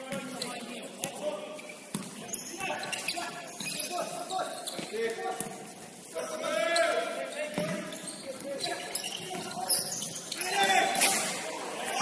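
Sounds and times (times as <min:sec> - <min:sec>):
shoes squeaking on floor: 0:00.0 - 0:11.4.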